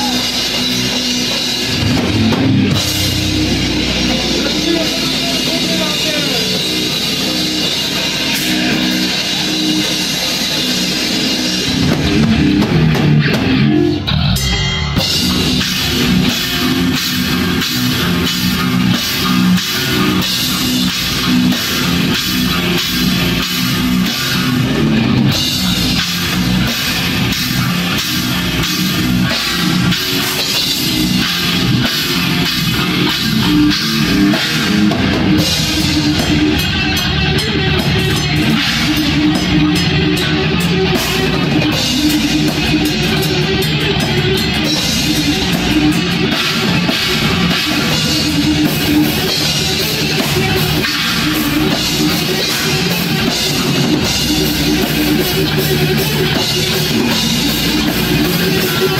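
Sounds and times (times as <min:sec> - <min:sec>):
bass guitar: 0:00.0 - 0:58.9
distorted electric guitar riffing: 0:00.0 - 0:58.9
fast dense drumming: 0:00.0 - 0:58.9.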